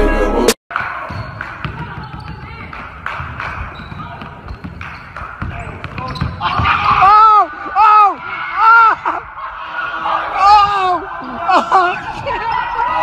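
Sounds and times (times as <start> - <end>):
basketball dribbling on hardwood: 0.8 - 6.7.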